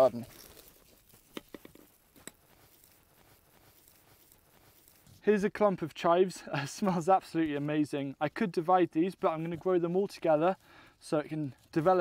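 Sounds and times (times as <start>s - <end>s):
faint crackle of soil and roots: 0.0s - 12.0s.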